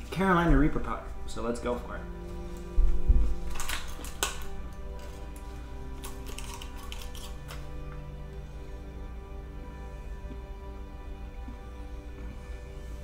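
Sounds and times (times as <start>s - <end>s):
background music with held tones: 0.0s - 13.0s
plastic blister pack crackling: 3.4s - 7.8s.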